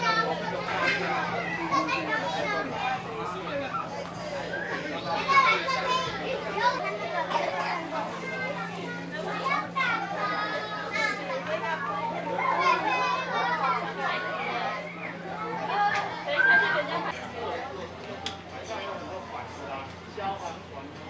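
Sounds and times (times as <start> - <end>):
adults talking: 0.0 - 21.0
young children chattering: 0.0 - 21.0.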